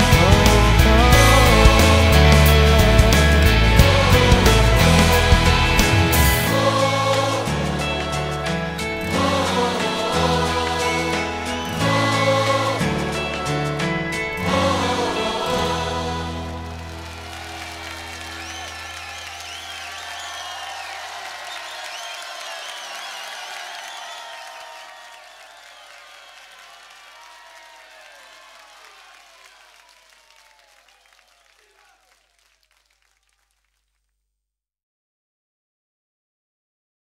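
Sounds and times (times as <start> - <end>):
applause and cheering: 0.0 - 33.7
whistles: 10.5 - 12.6, 17.1 - 32.3.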